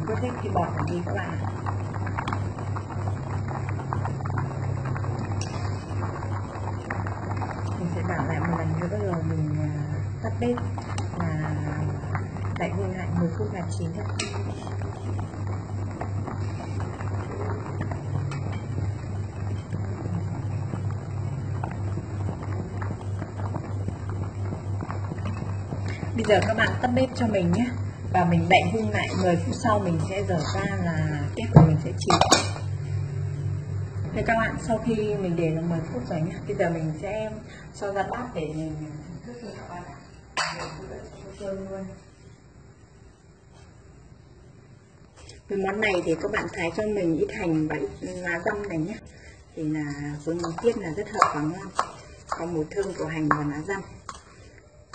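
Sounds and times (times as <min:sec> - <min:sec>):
low pulsing hum: 0:00.0 - 0:42.9
soup boiling and bubbling: 0:00.0 - 0:54.9.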